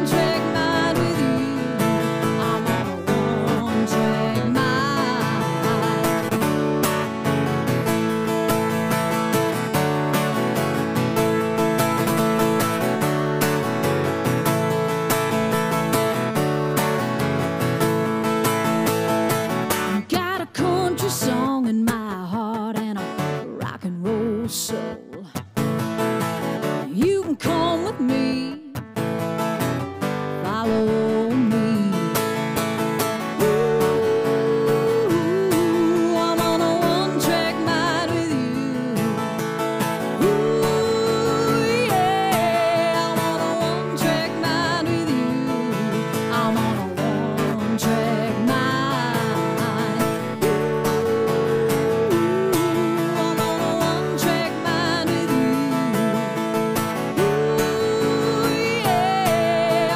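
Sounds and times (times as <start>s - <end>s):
woman singing: 0.0s - 7.1s, 19.7s - 25.6s, 26.7s - 28.8s, 30.2s - 59.9s
acoustic guitar strumming: 0.0s - 59.9s.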